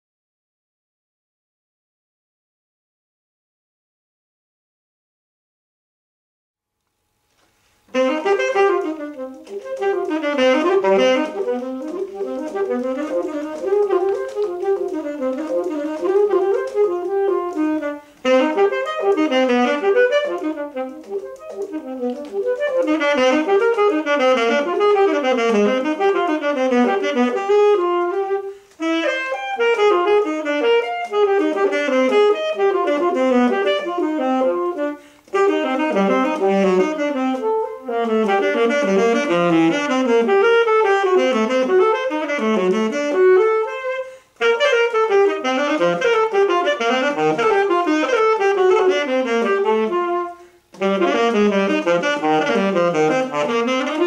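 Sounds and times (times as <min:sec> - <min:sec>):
piano accompaniment: 0:07.9 - 0:28.5
saxophone fast runs: 0:07.9 - 0:54.0.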